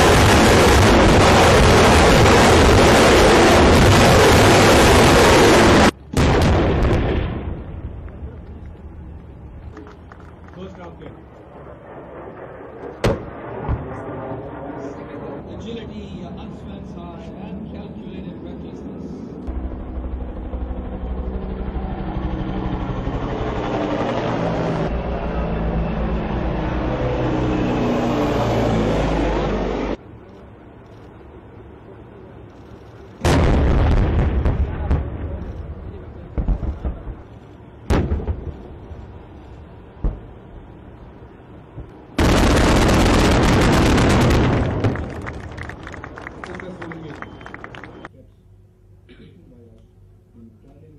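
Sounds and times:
loud sustained blast: 0.0s - 8.0s, 33.2s - 37.2s, 42.1s - 45.6s
smaller sharp bangs: 11.8s - 14.4s, 33.2s - 38.9s, 41.7s - 46.2s
loud gun shot: 13.0s - 14.0s
heavy vehicle engine: 19.5s - 48.1s.

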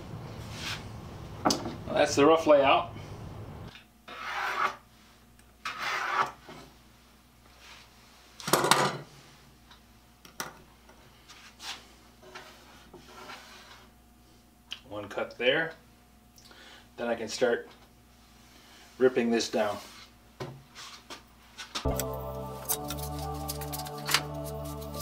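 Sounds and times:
scraping rubs on wooden board: 4.1s - 4.8s, 5.6s - 6.6s.

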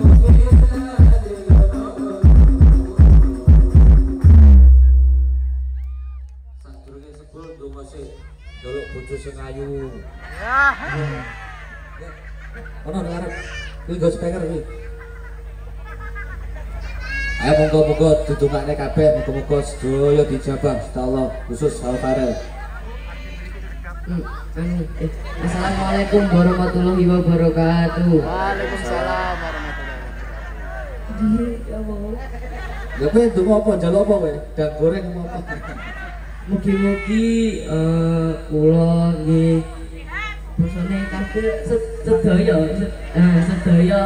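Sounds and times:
heavy bass drum beats: 0.0s - 6.8s
band music over sound system: 0.0s - 11.4s
room and crowd hum: 0.0s - 44.0s
long held low bass note: 2.3s - 10.2s, 37.1s - 44.0s
voice over sound system: 36.5s - 44.0s.

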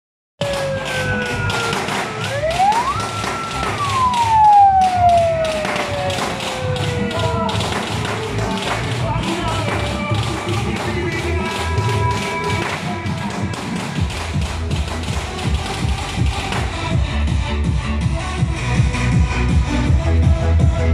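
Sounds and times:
siren-like swoops: 0.4s - 7.6s
loud music from car speakers: 0.4s - 20.9s
low bass beat: 0.4s - 20.9s.

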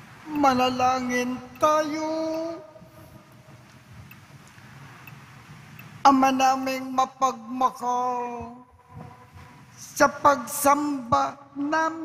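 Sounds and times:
priest chanting: 0.2s - 3.4s.

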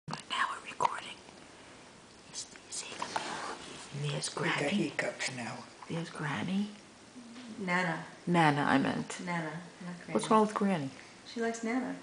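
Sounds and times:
person whispering: 0.1s - 1.2s, 2.3s - 4.7s.

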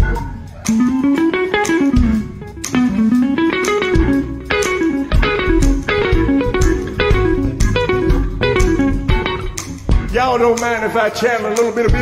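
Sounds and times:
electric guitar blues lines: 0.0s - 12.0s
person singing: 10.1s - 12.0s.

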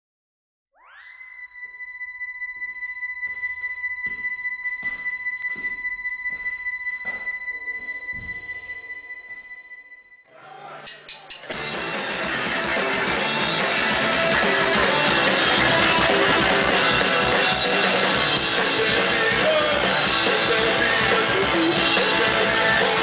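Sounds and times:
electric guitar feedback tone: 0.8s - 10.3s, 11.6s - 23.0s
punk band playing: 10.9s - 23.0s.

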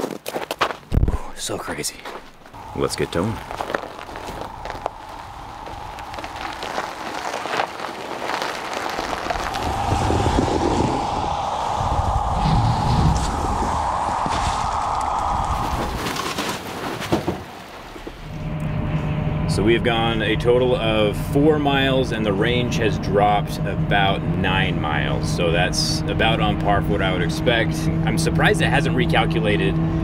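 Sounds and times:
tyres crunching on snow: 1.5s - 11.0s
electric vehicle whine: 2.6s - 16.4s, 18.2s - 30.0s.

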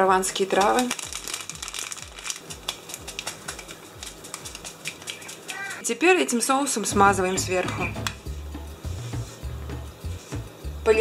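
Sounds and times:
dried herbs rustling: 0.0s - 5.9s
paper packet crinkling: 0.1s - 5.8s.

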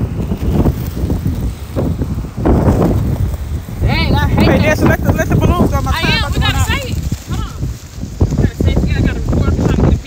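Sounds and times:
wind buffeting microphone: 0.0s - 10.0s.

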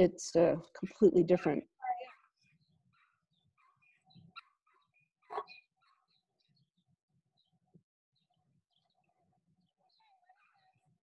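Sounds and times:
faint bird chirps: 1.8s - 6.8s, 7.4s - 11.0s.

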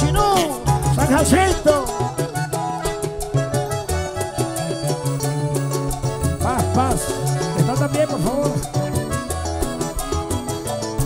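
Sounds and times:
live band playing instrumental: 0.0s - 11.0s.

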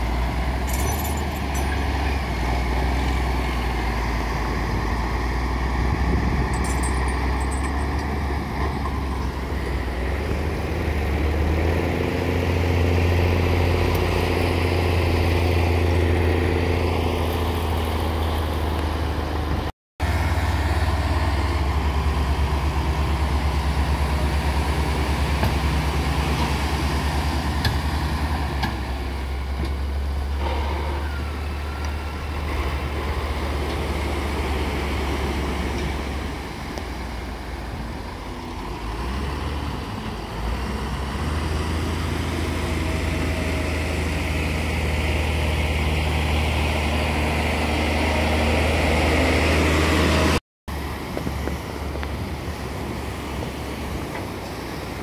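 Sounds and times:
tractor diesel engines running: 0.0s - 55.0s.

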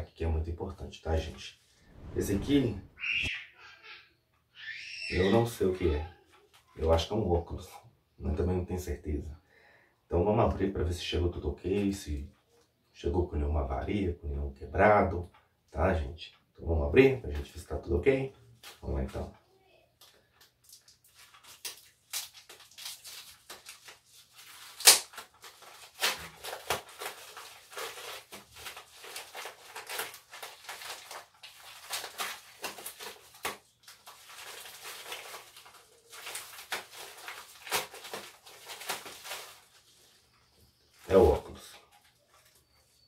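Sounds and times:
plastic ripping: 20.6s - 40.2s
plastic pouch crinkling: 20.6s - 40.4s.

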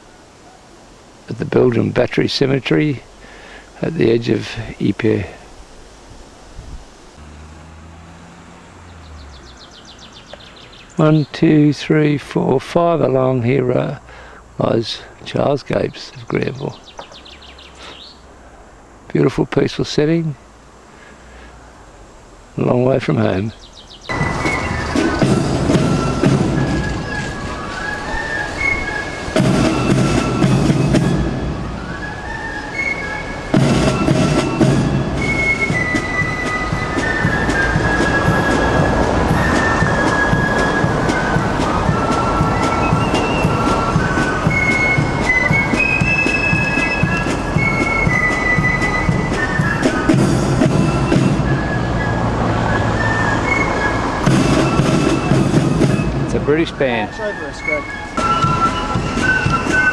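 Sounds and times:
regular drum beat: 24.1s - 27.6s, 29.2s - 31.8s, 33.5s - 51.6s, 54.2s - 56.8s, 58.2s - 59.9s
marching band brass: 24.1s - 59.9s.

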